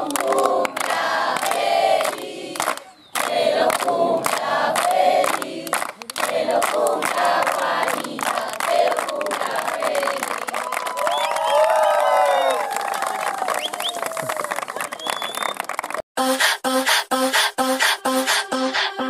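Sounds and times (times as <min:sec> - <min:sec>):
crowd clapping and cheering: 0:00.0 - 0:16.0
electronic music with steady beat: 0:16.2 - 0:19.0.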